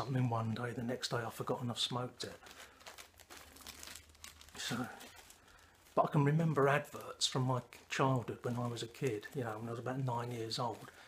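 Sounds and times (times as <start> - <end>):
man speaking: 0.0 - 2.4, 4.6 - 5.2, 6.0 - 10.9
packets crinkling: 1.0 - 11.0.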